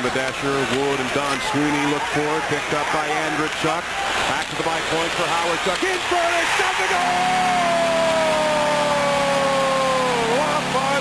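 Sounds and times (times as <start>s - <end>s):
crowd cheering: 0.5s - 11.0s.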